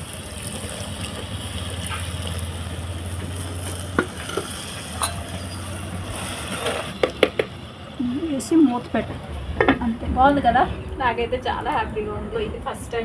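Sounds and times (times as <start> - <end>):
water pouring into pot: 0.0 - 7.2
food sizzling: 0.0 - 9.6.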